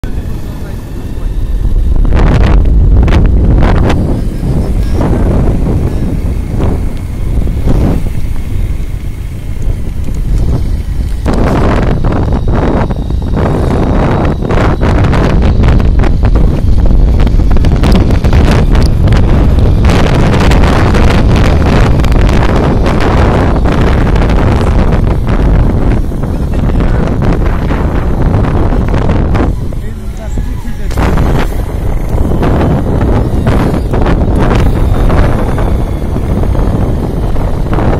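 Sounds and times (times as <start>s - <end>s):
motorbike engine: 0.0s - 37.9s
road noise: 0.0s - 37.9s
wind buffeting microphone: 0.0s - 37.9s.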